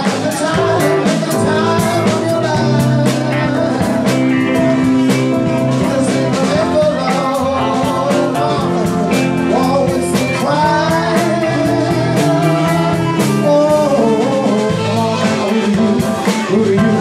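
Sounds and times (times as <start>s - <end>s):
drum kit: 0.0s - 17.0s
electric guitars: 0.0s - 17.0s
soul-funk band playing: 0.0s - 17.0s.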